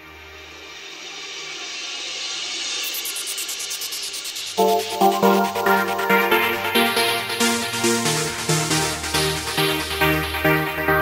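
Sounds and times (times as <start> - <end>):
rising white-noise sweep: 0.0 - 7.5
trance synth chords and beat: 0.0 - 11.0
fast high pulsing: 2.5 - 8.0.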